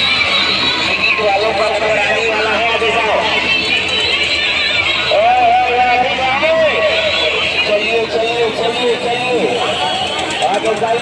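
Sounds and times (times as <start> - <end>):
hubbub of voices: 0.0 - 11.0
music playing: 0.0 - 11.0.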